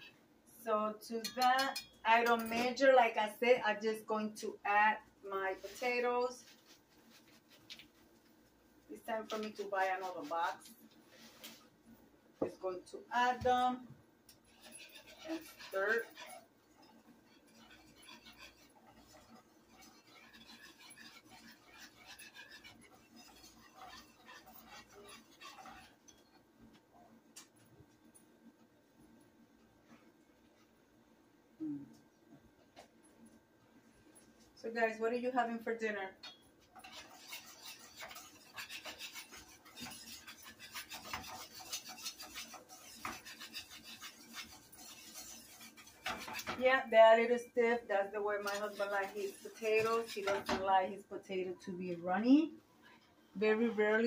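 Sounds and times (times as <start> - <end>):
spoon scraping metal saucepan: 1.1 - 2.9, 14.5 - 26.4, 36.8 - 47.5, 48.1 - 50.7.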